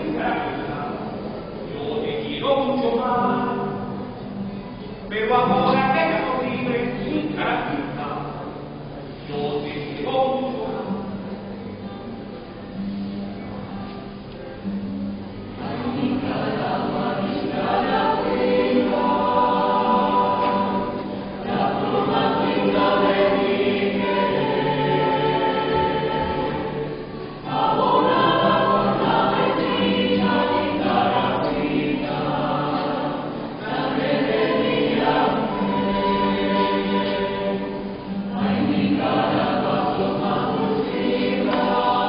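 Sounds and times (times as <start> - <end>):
mixed choir singing: 9.2 - 11.0, 15.5 - 42.0.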